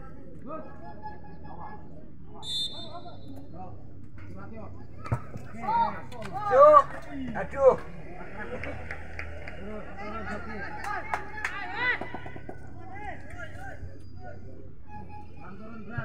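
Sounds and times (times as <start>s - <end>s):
short high whistle: 2.4s - 3.2s
players shouting: 5.0s - 14.0s.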